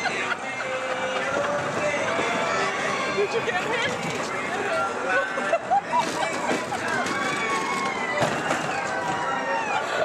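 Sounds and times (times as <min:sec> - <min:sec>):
crowd calling and shouting: 0:00.0 - 0:10.0.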